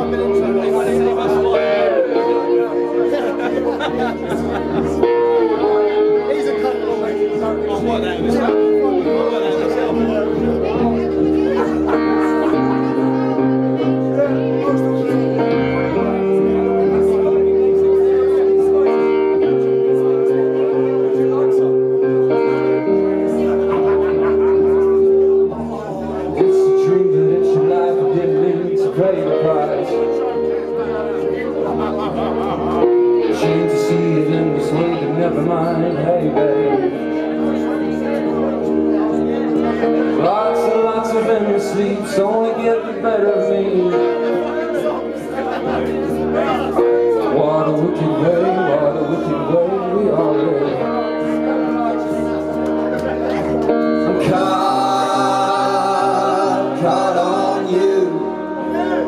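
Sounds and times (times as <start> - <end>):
audience chatter: 0.0 - 59.0
live rock band playing: 0.0 - 59.0
resonator guitar chords: 0.0 - 59.0.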